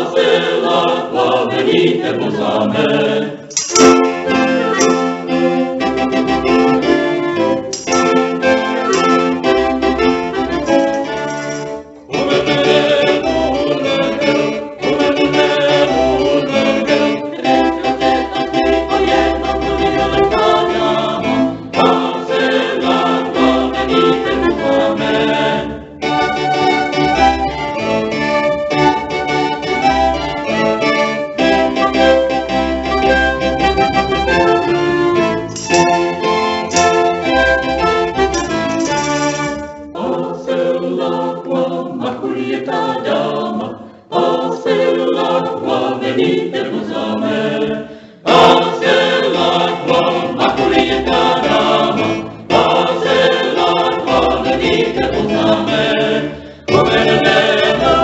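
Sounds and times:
keyboard accompaniment: 1.8 - 43.5, 48.3 - 58.0
violins playing a tune: 3.5 - 40.0, 56.7 - 58.0.

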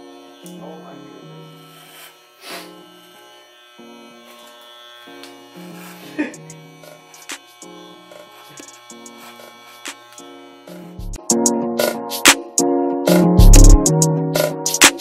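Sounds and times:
electric hair clippers buzzing: 0.0 - 15.0.

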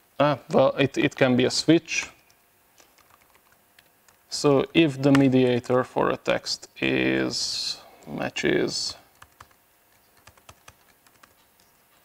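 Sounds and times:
keyboard typing clicks: 2.8 - 4.2, 9.1 - 11.7.

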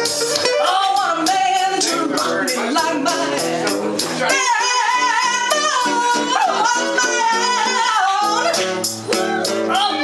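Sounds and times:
guitar accompaniment: 0.0 - 10.0
woman singing into a microphone: 0.4 - 10.0.

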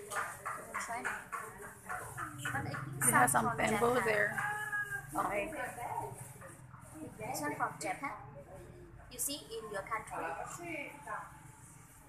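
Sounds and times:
quiet voices talking: 0.0 - 11.4.

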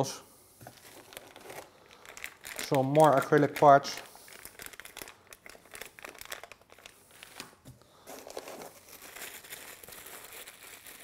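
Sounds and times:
plastic bags crinkling: 0.6 - 11.0.

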